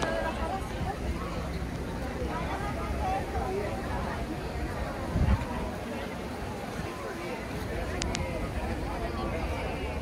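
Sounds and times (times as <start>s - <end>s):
pedestrians chattering: 0.0s - 10.0s.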